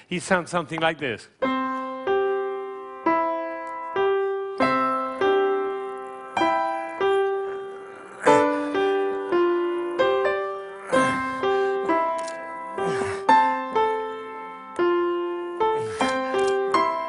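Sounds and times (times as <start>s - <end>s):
grand piano slow melody: 1.4s - 17.0s.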